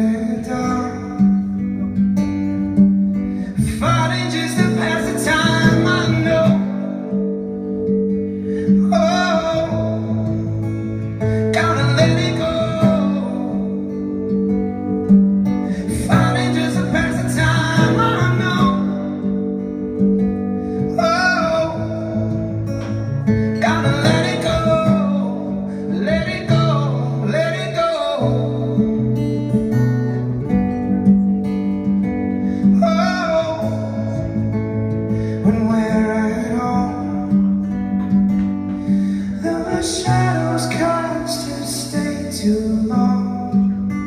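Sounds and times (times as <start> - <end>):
man singing: 0.0 - 2.0, 3.4 - 14.5, 15.6 - 20.0, 20.8 - 29.2, 32.6 - 34.6, 35.2 - 44.0
acoustic guitar: 0.0 - 44.0.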